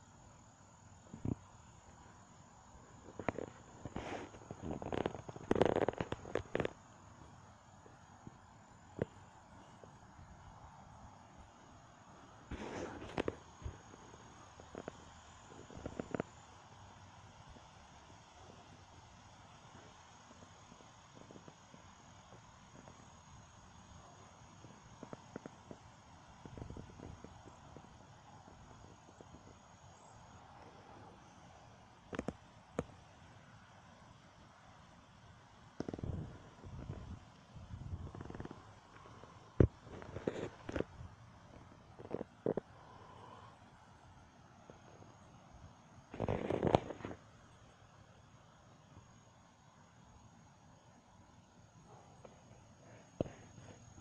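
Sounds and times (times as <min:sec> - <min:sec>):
breeze hissing: 0:00.0 - 0:54.0.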